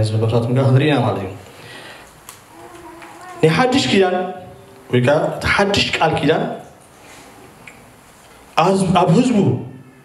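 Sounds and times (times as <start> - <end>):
man preaching into a microphone: 3.4 - 6.7, 8.6 - 9.8.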